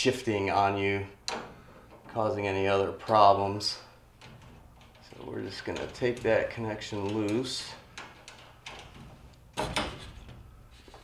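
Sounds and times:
small metal clicks: 4.1s - 10.6s.

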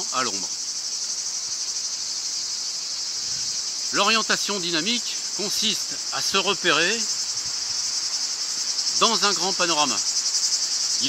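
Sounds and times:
insects shrilling: 0.0s - 11.0s.

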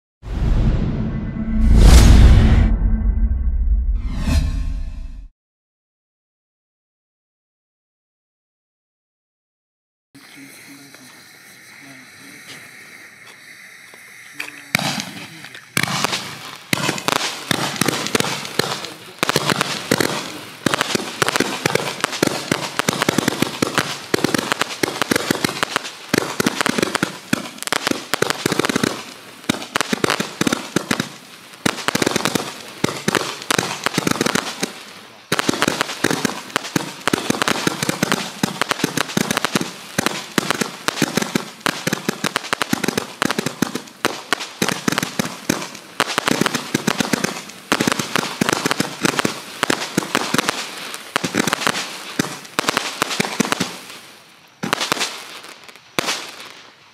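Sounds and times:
firework barrage popping: 0.2s - 5.3s, 14.3s - 56.6s.

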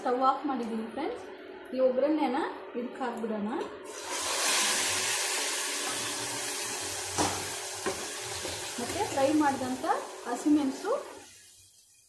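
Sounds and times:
hot oil sizzling in liquid: 3.9s - 12.0s.

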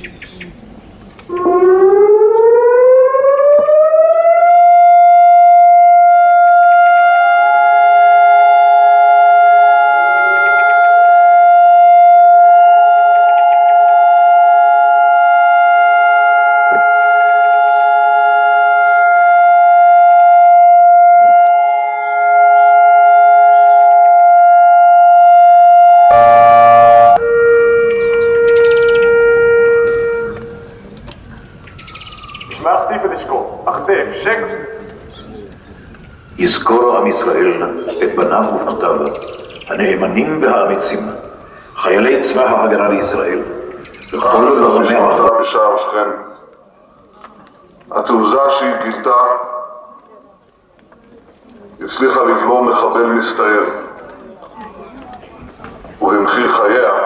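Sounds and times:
civil defence siren: 1.3s - 33.2s.

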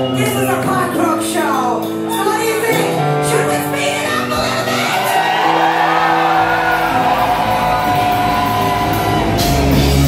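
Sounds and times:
punk rock band playing live: 0.0s - 10.0s
crowd whooping and shouting: 4.5s - 10.0s.

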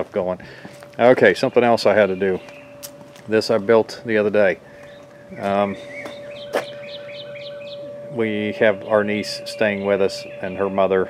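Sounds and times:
faint steady tone: 0.0s - 11.0s
bird chirping: 0.5s - 11.0s.

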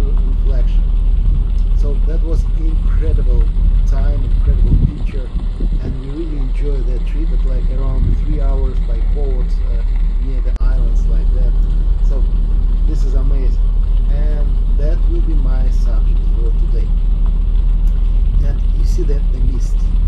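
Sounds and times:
people talking: 0.0s - 0.8s, 1.6s - 12.3s, 12.9s - 16.9s, 18.4s - 19.9s
boat engine drone: 0.0s - 20.0s.

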